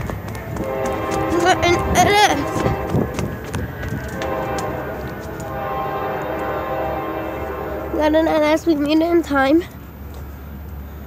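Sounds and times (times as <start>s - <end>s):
running footsteps on concrete: 0.0s - 6.7s.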